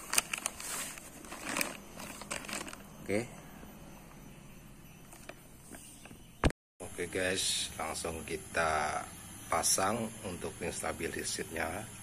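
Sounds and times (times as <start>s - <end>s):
plastic bag crinkling: 0.0s - 2.9s.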